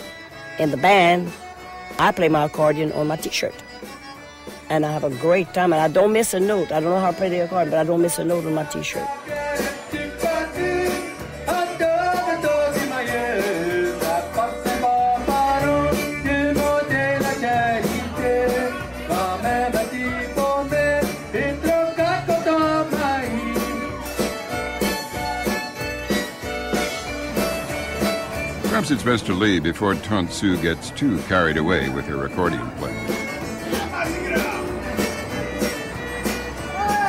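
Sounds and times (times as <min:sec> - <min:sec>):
accordion: 0:00.0 - 0:37.0
person singing: 0:06.4 - 0:24.2.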